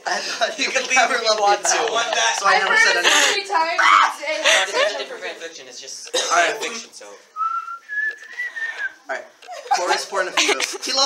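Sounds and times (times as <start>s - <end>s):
man whistling a held note: 7.4s - 9.0s.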